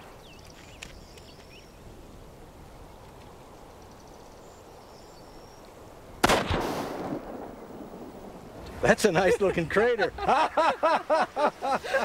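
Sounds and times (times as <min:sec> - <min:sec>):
rifle shot echoing: 0:06.2 - 0:08.4.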